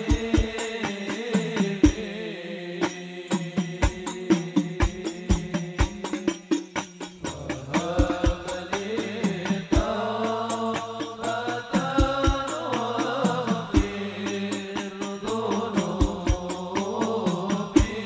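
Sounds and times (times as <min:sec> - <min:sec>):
deep drum beat: 0:00.0 - 0:02.1, 0:03.6 - 0:18.0
quick light percussion strikes: 0:00.0 - 0:02.2, 0:02.8 - 0:18.0
man singing into a microphone: 0:00.0 - 0:18.0.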